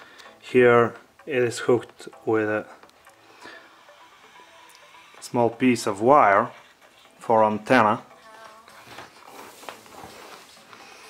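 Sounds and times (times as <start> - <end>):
faint music from radio loudspeaker: 0.0 - 11.0.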